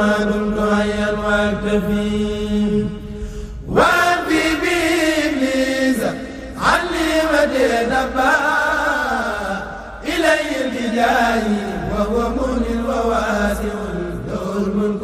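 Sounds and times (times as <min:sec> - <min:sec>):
person chanting devotional verse: 0:00.0 - 0:15.0.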